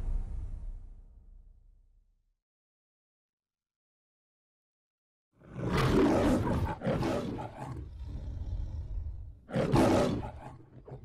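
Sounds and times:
lion growling: 0:05.4 - 0:11.0
lion roaring: 0:05.4 - 0:11.0.

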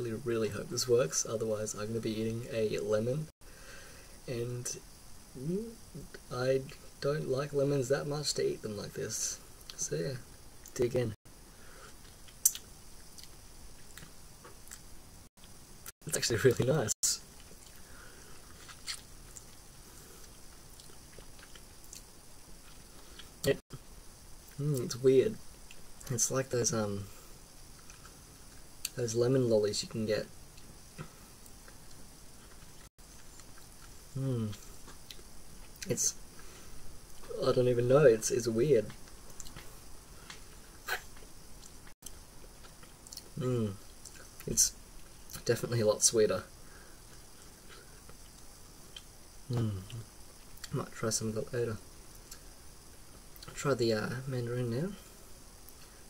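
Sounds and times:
wet mouth clicks: 0:12.3 - 0:13.4
person biting and sucking lemon: 0:18.5 - 0:19.5.

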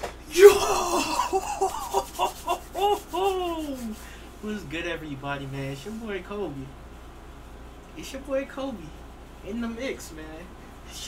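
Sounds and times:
man laughing and whooping: 0:00.3 - 0:04.0.

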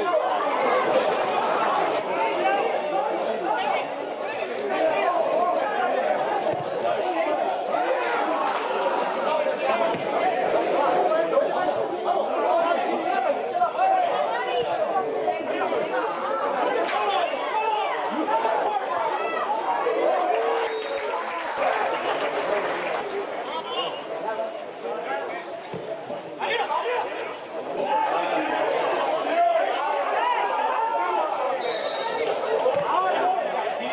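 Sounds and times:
crowd chattering: 0:00.0 - 0:33.9.

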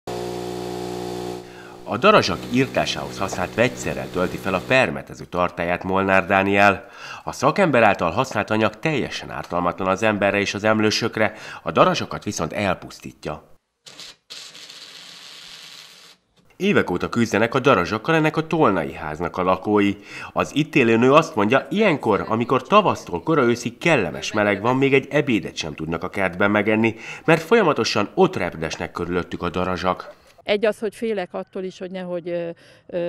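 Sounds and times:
small electric motor humming: 0:00.1 - 0:04.8
pressure sprayer hissing: 0:00.1 - 0:04.9.

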